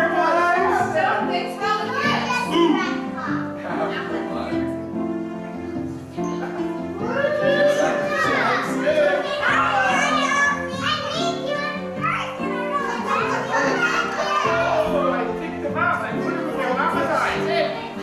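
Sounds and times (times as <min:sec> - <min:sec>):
background music with held notes: 0:00.0 - 0:18.0
children calling and chattering: 0:00.0 - 0:18.0.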